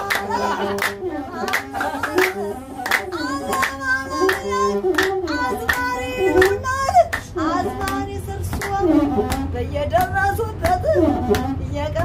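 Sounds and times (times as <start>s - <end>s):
rhythmic handclaps: 0.0s - 12.0s.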